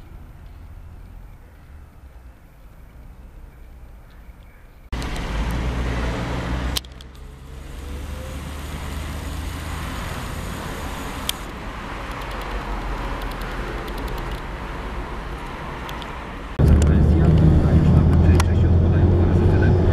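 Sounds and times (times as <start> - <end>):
street traffic: 0.0 - 19.9
bus engine running: 4.9 - 19.9
sharp click: 12.1 - 14.5, 15.8 - 16.9.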